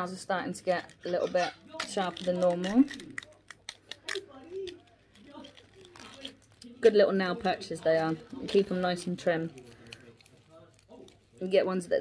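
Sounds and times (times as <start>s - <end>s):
plastic toy pieces clicking: 1.7s - 6.4s.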